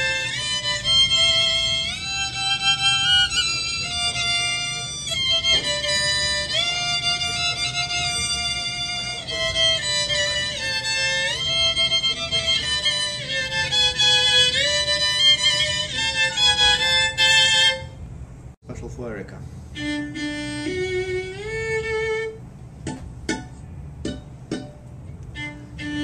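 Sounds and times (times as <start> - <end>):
fiddle sliding melody: 0.0 - 18.0, 19.7 - 22.5, 25.3 - 26.0.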